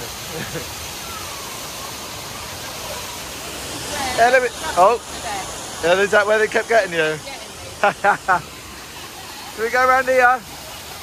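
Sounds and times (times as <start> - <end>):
faint voices: 0.0 - 11.0
water pouring and splashing: 0.0 - 11.0.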